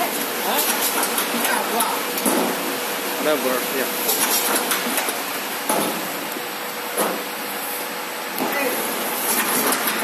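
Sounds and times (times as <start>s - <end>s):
machine whirring and hissing: 0.0s - 10.0s.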